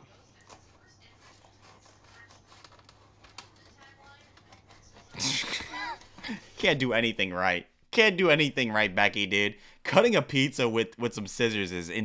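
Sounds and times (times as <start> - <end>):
scissors snipping pizza: 0.4 - 6.2.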